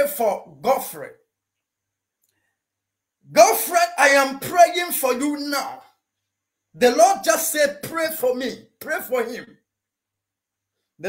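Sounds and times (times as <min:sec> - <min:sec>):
man speaking: 0:00.0 - 0:01.2, 0:03.3 - 0:05.9, 0:06.8 - 0:09.6.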